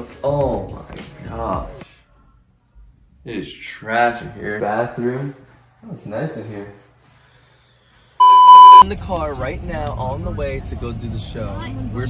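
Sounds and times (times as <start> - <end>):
electronic bleep tone: 8.2 - 8.8.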